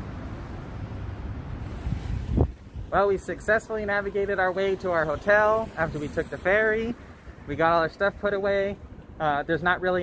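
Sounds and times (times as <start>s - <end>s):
wind buffeting microphone: 0.1s - 3.9s.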